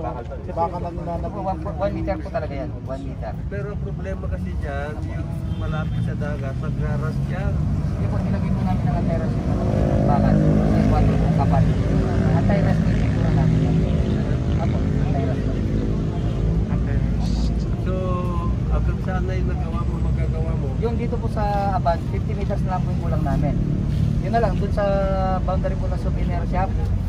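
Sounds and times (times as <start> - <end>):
people talking: 16.7 - 23.6.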